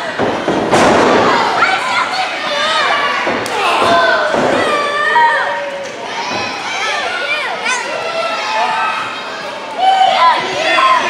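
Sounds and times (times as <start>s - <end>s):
crowd shouting and yelling: 0.0s - 11.0s.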